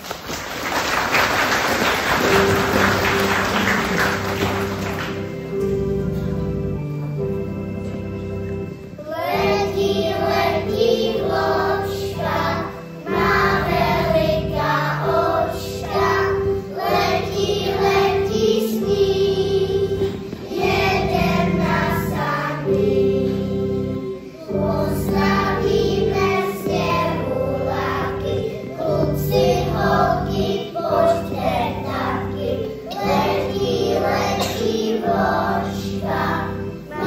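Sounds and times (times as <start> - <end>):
children singing: 9.0 - 37.0.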